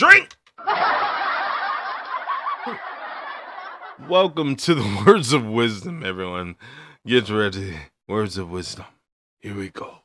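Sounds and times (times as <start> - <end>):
muffled snickering giggles: 2.3 - 3.4.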